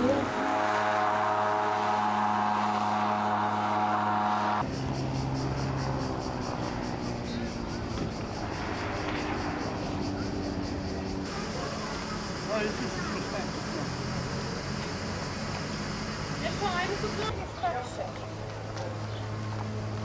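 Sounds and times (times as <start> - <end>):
low hum: 0.0 - 11.3
small engine droning: 0.0 - 20.0.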